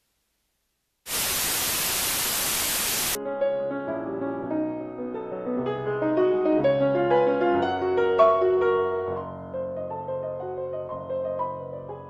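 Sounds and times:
white noise static burst: 1.0 - 3.2.

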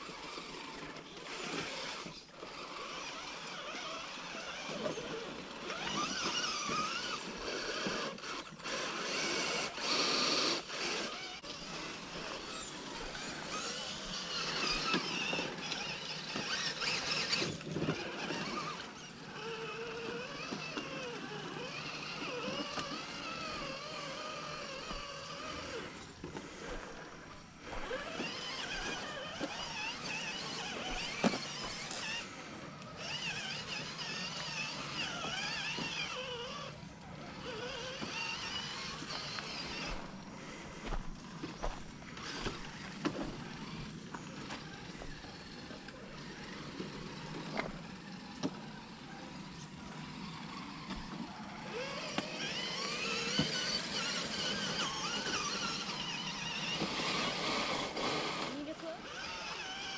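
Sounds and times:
toy car motors whining: 0.0 - 59.9.

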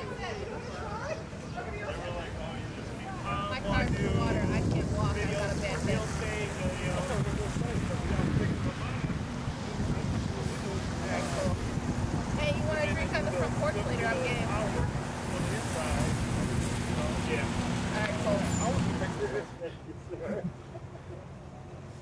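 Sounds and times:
muffled conversation: 0.0 - 21.7
wind noise on microphone: 3.2 - 19.2.

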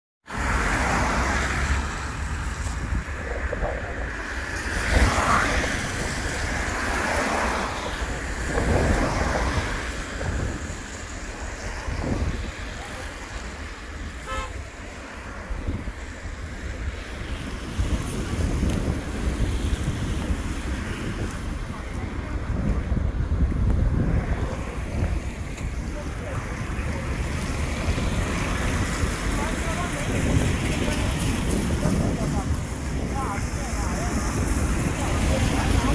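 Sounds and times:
traffic passing on wet road: 0.2 - 35.9
wind buffeting microphone: 0.3 - 35.9.

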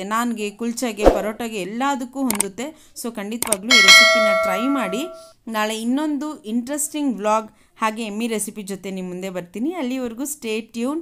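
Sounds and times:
woman speaking: 0.0 - 7.2
bell chime: 3.7 - 5.2.

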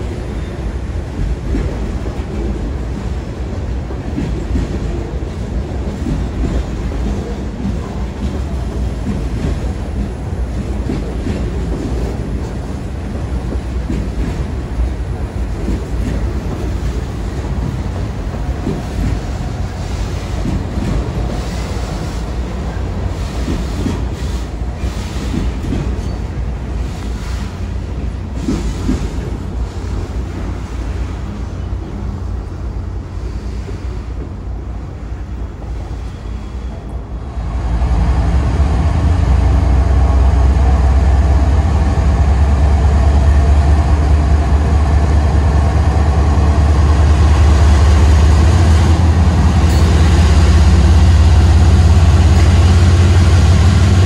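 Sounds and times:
train wheels rumbling on rail: 0.0 - 54.0
wheels clacking over rail joints: 3.9 - 30.3.

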